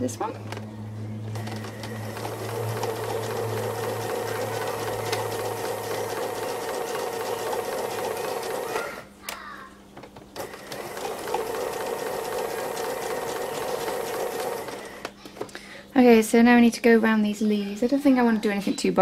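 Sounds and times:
sewing machine stitching: 1.4 - 9.0, 10.4 - 15.1.

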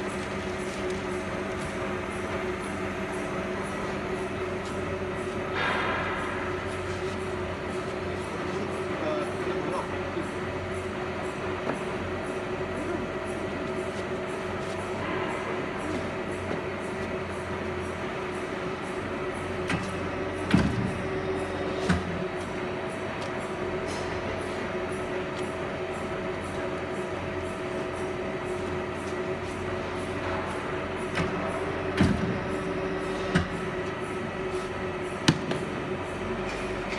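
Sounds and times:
hydraulic press humming: 0.0 - 36.9.

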